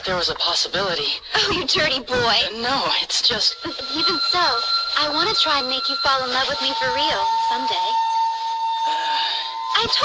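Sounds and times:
high-pitched electronic tone: 2.6s - 10.0s.

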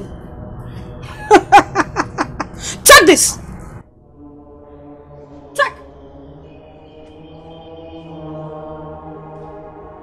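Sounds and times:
droning chant-like music: 3.5s - 10.0s.

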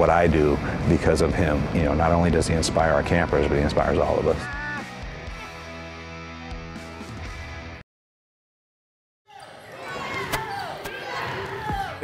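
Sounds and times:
children shouting and cheering: 4.4s - 5.7s, 9.3s - 12.0s.

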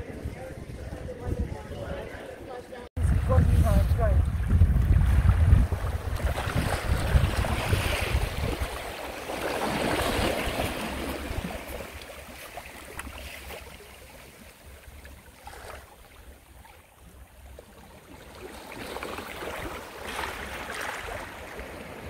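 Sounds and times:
wind buffeting microphone: 0.0s - 11.9s
small waves lapping over rocks: 3.2s - 22.0s.

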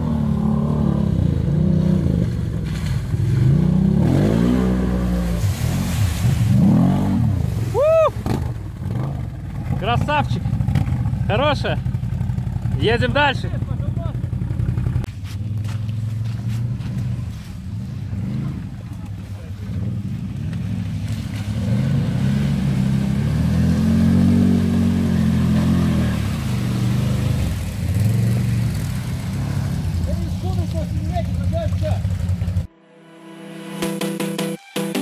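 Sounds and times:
quad bike engine revving: 0.0s - 15.1s, 17.9s - 32.7s.

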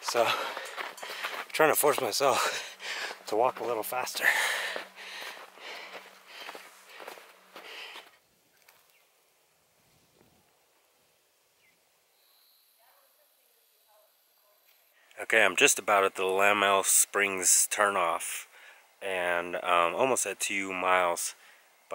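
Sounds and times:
footsteps on snow: 0.0s - 9.0s
hard rapid breathing: 0.2s - 1.6s, 2.3s - 3.3s, 4.1s - 8.2s.

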